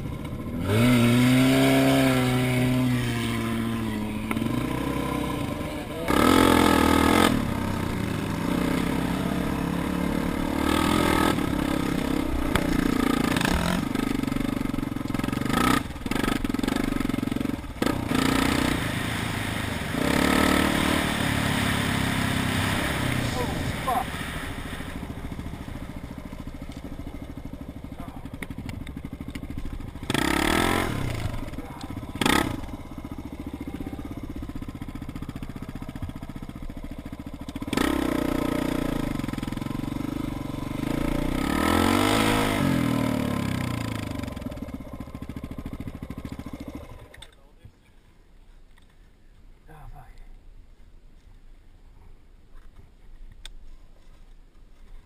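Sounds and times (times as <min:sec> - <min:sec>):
dirt bike engine revving: 0:00.0 - 0:47.2.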